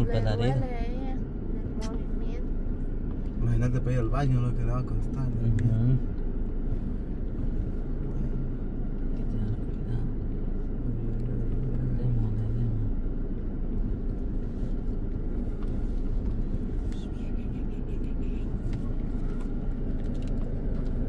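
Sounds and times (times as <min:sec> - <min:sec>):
engine and tyres rumbling: 0:00.0 - 0:21.0
hum: 0:00.0 - 0:21.0.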